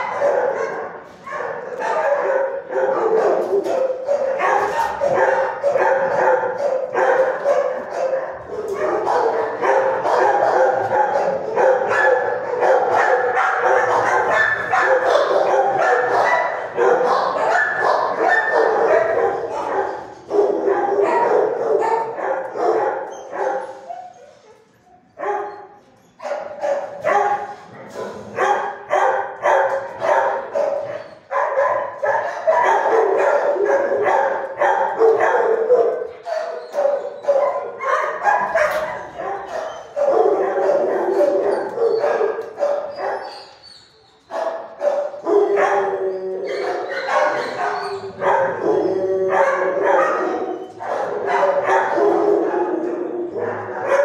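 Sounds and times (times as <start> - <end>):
dogs barking and yipping: 0.0 - 54.0.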